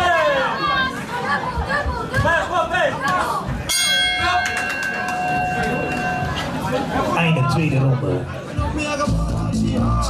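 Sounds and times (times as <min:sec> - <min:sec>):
crowd shouting: 0:00.0 - 0:09.1
ringside bell ringing: 0:03.7 - 0:06.6.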